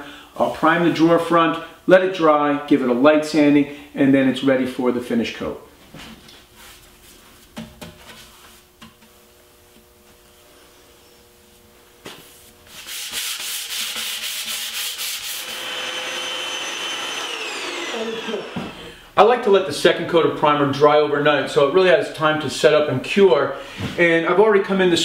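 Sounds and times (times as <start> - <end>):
handheld vacuum running: 13.8 - 19.0.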